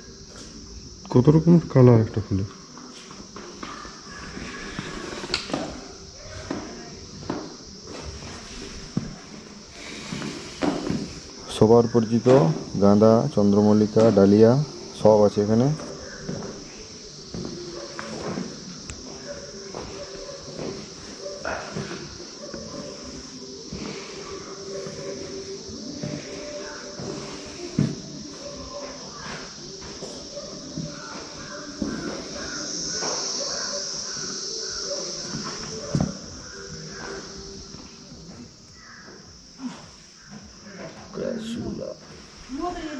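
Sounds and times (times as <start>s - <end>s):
faint voices: 0.0s - 42.9s
insects droning: 0.0s - 42.9s.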